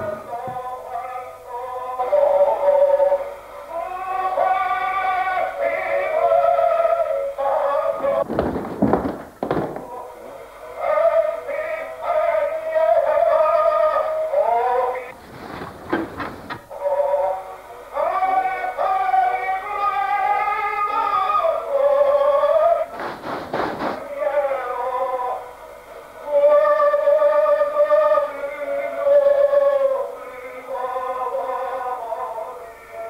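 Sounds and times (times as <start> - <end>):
high voice singing with vibrato: 0.0 - 8.3, 9.7 - 15.2, 16.6 - 23.2, 26.2 - 33.0.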